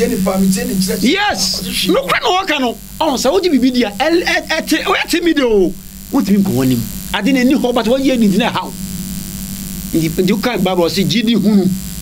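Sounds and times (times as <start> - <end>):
men talking: 0.0 - 8.8, 9.9 - 11.8
low electrical buzz: 0.0 - 12.0.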